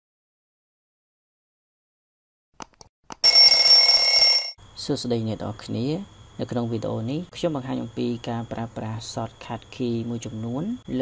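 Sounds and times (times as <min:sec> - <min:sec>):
notification bell ring: 0:03.2 - 0:04.6.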